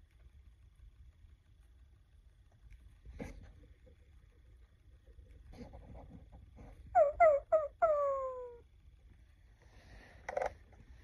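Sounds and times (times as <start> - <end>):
toy speaker dog yips: 7.0 - 8.6.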